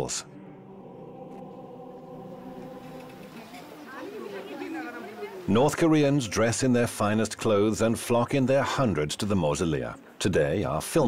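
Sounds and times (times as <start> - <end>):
steady held tone: 0.0 - 4.0
people chattering: 0.0 - 11.0.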